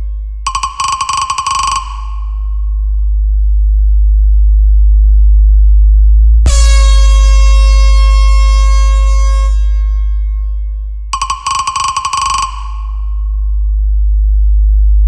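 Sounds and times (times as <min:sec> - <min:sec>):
deep bass tone: 0:00.0 - 0:00.5, 0:01.9 - 0:11.2, 0:12.6 - 0:15.0
air horn blast: 0:06.5 - 0:10.5.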